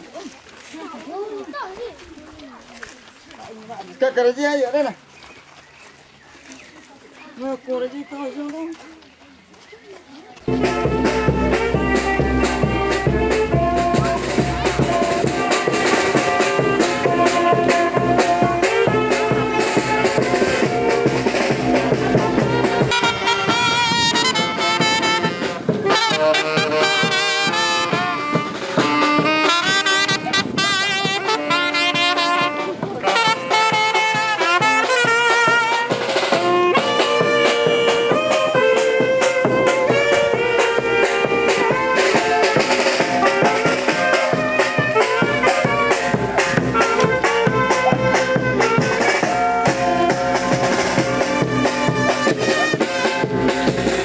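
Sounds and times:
drums: 0:09.4 - 0:54.0
brass band playing: 0:10.4 - 0:54.0.

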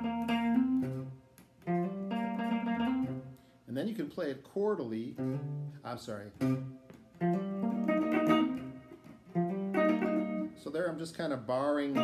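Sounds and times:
electric guitar blues chords: 0:00.0 - 0:03.5, 0:04.9 - 0:12.0.

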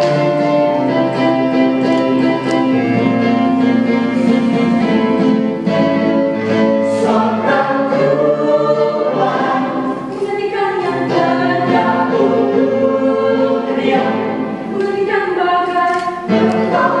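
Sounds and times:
vocal group singing in harmony: 0:04.1 - 0:17.0.

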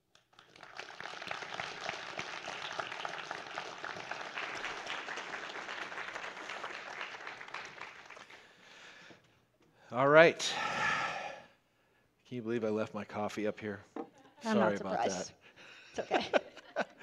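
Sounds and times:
crowd applauding: 0:00.0 - 0:08.9.

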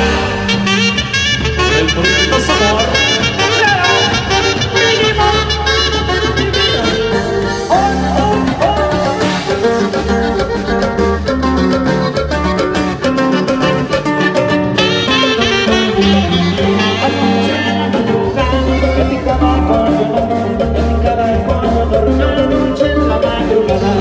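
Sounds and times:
live band playing: 0:00.0 - 0:24.0
saxophone lead: 0:00.0 - 0:24.0.

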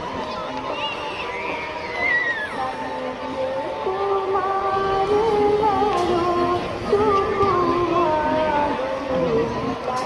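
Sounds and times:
festival crowd: 0:00.0 - 0:10.0.

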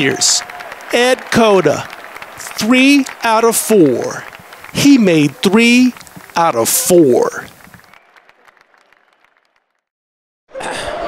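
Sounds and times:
faint crowd applause: 0:00.0 - 0:09.9, 0:10.5 - 0:11.0.

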